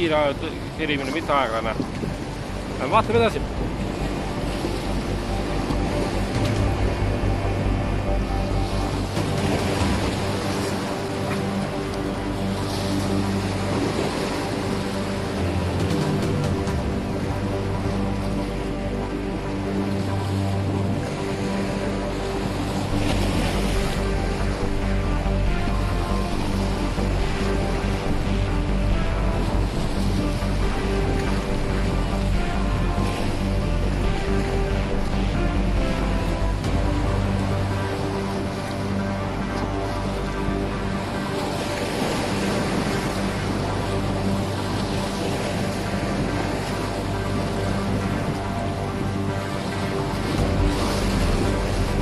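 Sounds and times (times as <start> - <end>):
background music with held tones: 0.0 - 52.0
sea waves breaking on rocks: 0.0 - 52.0.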